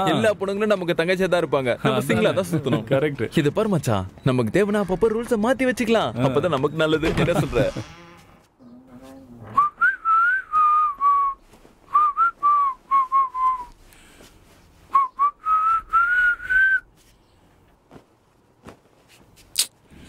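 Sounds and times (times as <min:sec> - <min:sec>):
man whistling a tune: 0:09.6 - 0:13.7, 0:14.9 - 0:16.9.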